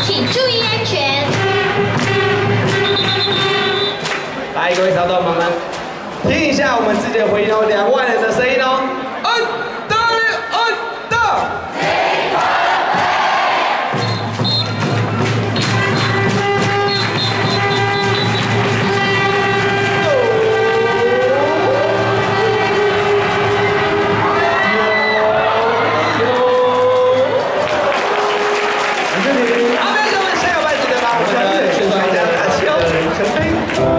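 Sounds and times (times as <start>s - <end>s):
amplified cheer music: 0.0s - 5.1s, 11.5s - 33.9s
crowd cheering and singing: 0.0s - 33.9s.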